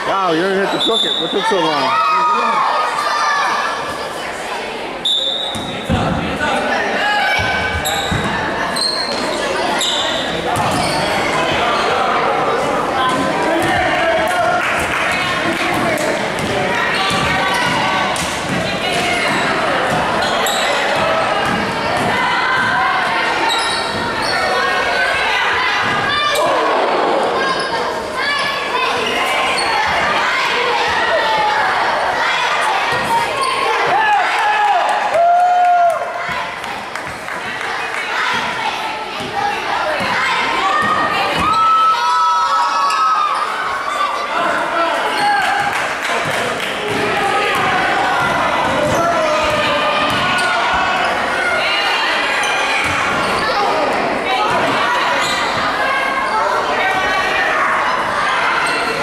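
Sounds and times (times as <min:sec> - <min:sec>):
sneakers squeaking on floor: 0:00.6 - 0:01.8, 0:05.0 - 0:06.3, 0:07.3 - 0:12.0, 0:16.4 - 0:22.7, 0:23.3 - 0:24.9, 0:48.6 - 0:51.5, 0:52.4 - 0:53.9, 0:54.5 - 0:56.4.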